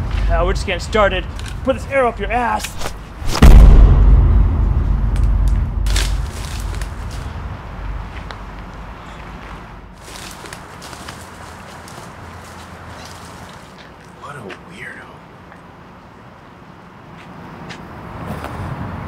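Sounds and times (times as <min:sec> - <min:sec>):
cinematic boom with deep rumble: 0:03.2 - 0:09.0.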